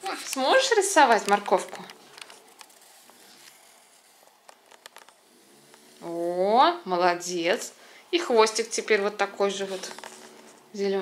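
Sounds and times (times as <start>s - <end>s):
pencil scratching on paper: 0.1s - 6.3s, 8.3s - 10.8s.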